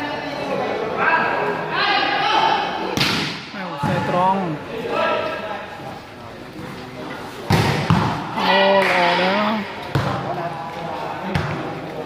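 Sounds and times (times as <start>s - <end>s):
volleyball slaps: 3.0s - 4.0s, 7.5s - 9.2s, 9.8s - 10.3s.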